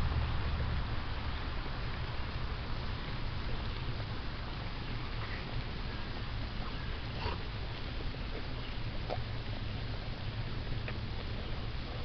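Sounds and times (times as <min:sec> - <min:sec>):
dog sniffing: 0:06.7 - 0:07.5.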